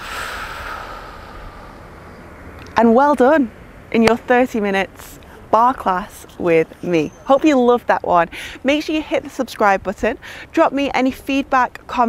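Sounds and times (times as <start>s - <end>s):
breathy exhale: 0.0s - 2.3s
steady background hiss: 0.0s - 12.0s.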